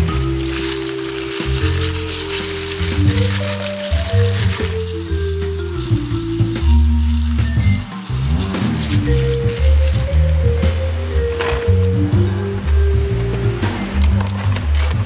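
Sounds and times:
wet squishing of meat: 0.0s - 10.3s
background music with low notes: 0.0s - 15.0s
plastic glove crinkling: 0.0s - 15.0s.

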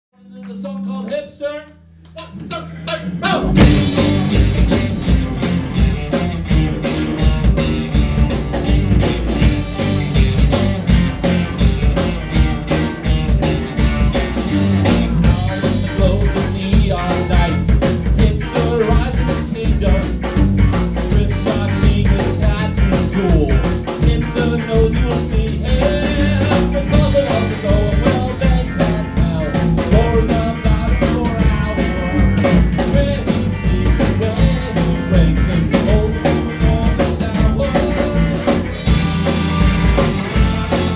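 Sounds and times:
rock band playing: 1.9s - 40.9s.

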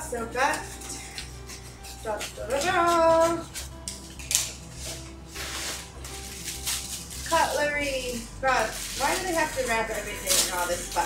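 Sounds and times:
soft background music: 0.0s - 11.0s
plastic packaging crinkling: 0.6s - 11.0s.

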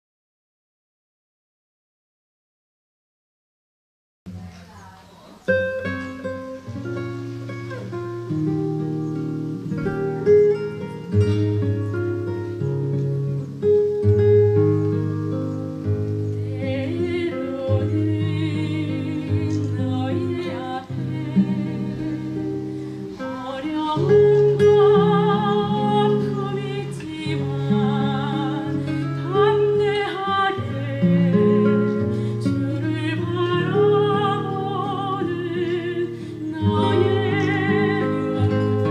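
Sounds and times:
classical guitar playing: 4.3s - 38.9s
soprano singing with vibrato: 16.4s - 38.9s.

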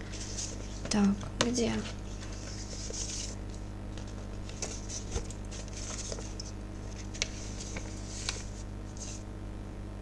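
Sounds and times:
paper rustling: 0.0s - 9.2s
low electrical hum: 0.0s - 10.0s.

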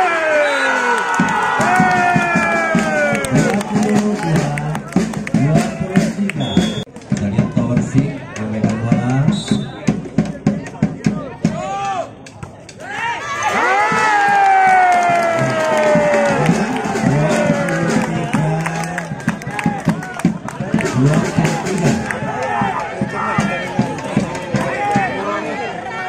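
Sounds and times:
spectators shouting and cheering: 0.0s - 26.0s.

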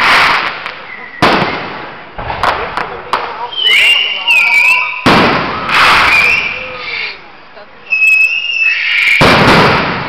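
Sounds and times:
fireworks crackling: 0.0s - 10.0s.

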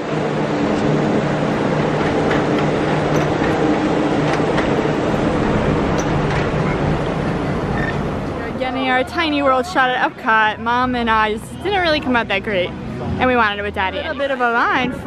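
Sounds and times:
monorail train passing overhead: 0.0s - 15.0s.

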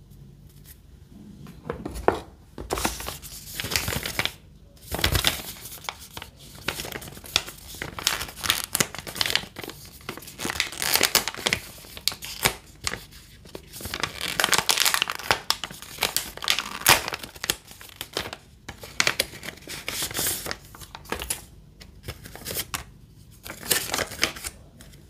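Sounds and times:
plastic pouch crinkling: 2.7s - 21.4s.

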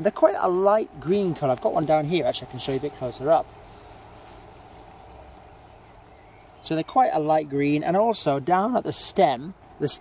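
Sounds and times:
faint even hiss: 1.0s - 6.5s.

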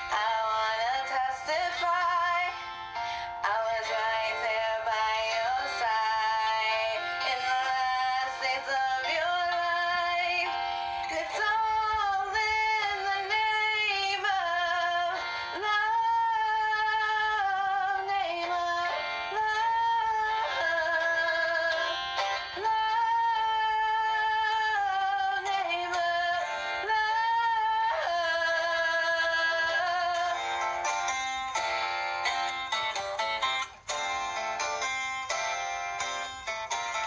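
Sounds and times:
woman singing with accompaniment: 0.0s - 37.0s.

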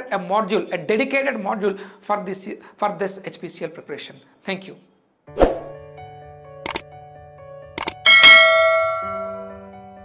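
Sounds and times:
soft background music: 5.3s - 10.0s
notification bell ding: 8.0s - 9.6s.

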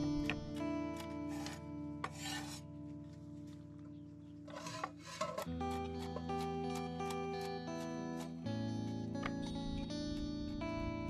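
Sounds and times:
soft guitar music: 0.0s - 11.0s
knife scraping cutting board: 1.0s - 2.6s, 4.5s - 8.3s.

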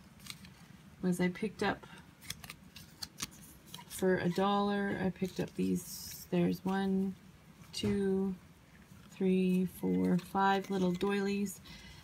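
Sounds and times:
light clicks and rustles of handling: 1.9s - 11.5s.

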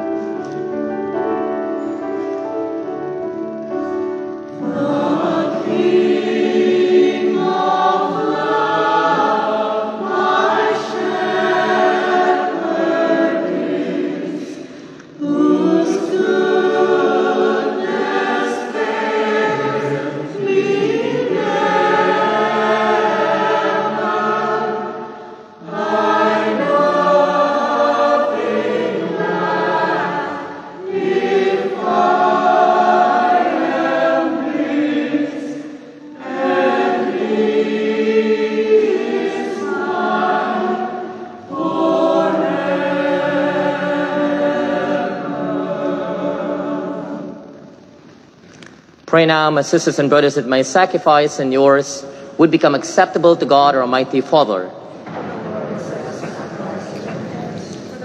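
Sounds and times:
choir singing a hymn: 0.0s - 48.0s, 49.2s - 58.0s.

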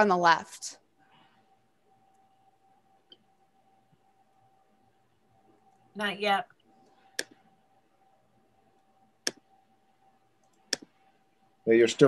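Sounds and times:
faint steady tone: 0.0s - 12.0s
sharp clicks: 7.1s - 7.4s, 9.2s - 9.4s, 10.4s - 10.9s.

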